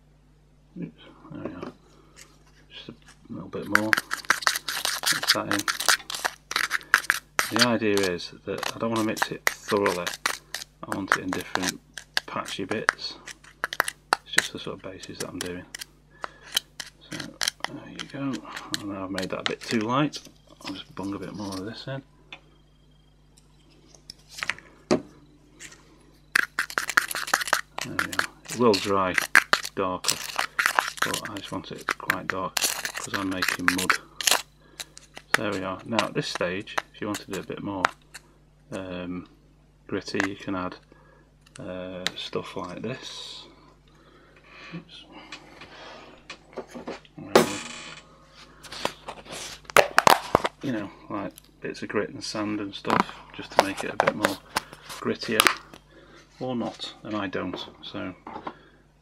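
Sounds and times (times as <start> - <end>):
metal tool scraping plastic cup: 3.1 - 19.9, 21.0 - 21.8, 26.4 - 38.2
sharp plastic clacks: 3.1 - 20.4.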